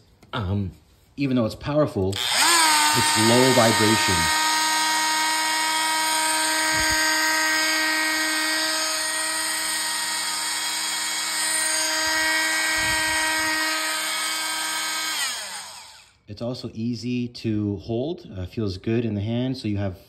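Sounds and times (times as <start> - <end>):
high motor whine: 2.1 - 16.2.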